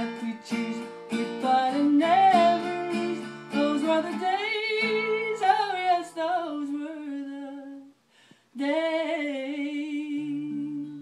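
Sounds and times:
strummed acoustic guitar: 0.0 - 7.5
woman singing: 0.0 - 11.0.

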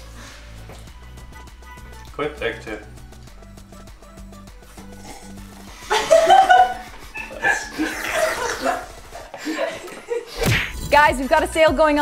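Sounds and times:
people chuckling: 5.6 - 10.4.

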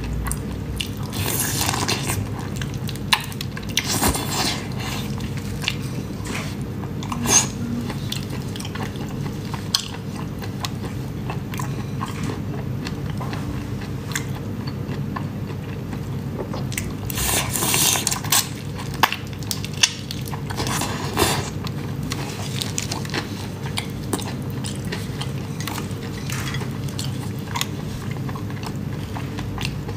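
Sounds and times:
chewing prawns: 0.0 - 29.9.

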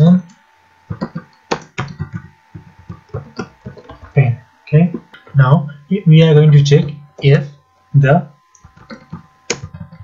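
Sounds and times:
keyboard typing: 0.9 - 4.2, 8.6 - 10.0.

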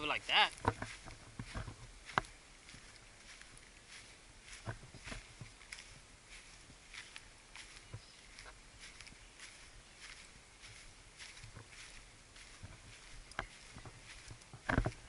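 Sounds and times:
footsteps in short grass: 0.0 - 15.0
soft crunches and clicks: 0.1 - 15.0.

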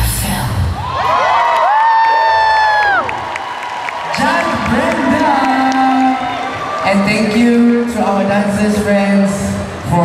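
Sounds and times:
audience cheering: 0.8 - 10.0.

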